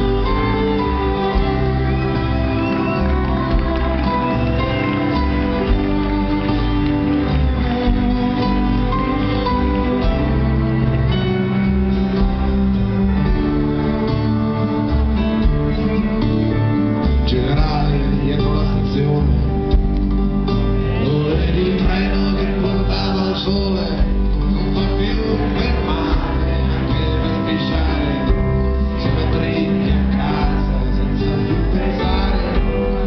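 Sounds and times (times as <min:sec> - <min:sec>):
wavering violin melody: 0:00.0 - 0:17.3
acoustic band playing: 0:00.0 - 0:33.0.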